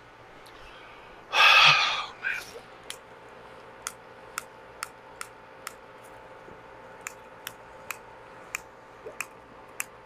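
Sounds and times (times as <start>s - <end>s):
breathy exhale: 0.6s - 2.6s.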